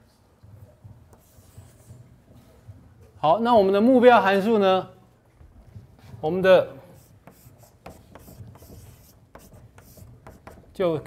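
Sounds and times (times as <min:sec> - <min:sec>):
chalk tapping on board: 0:01.1 - 0:02.5, 0:06.9 - 0:10.8
chalk scratching on blackboard: 0:01.1 - 0:02.6, 0:06.9 - 0:10.8.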